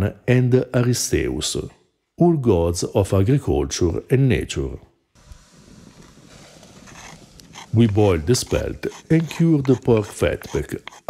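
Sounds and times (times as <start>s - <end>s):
grain pouring hiss: 5.2s - 10.4s.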